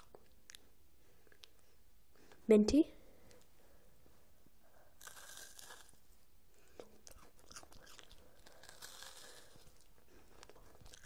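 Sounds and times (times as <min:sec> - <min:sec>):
crunching and chewing: 0:05.0 - 0:11.0.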